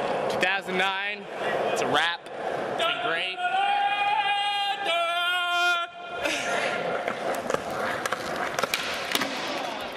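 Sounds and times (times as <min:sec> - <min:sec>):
skateboard wheels rolling: 0:06.8 - 0:09.9
skateboard clacking down: 0:07.0 - 0:09.9.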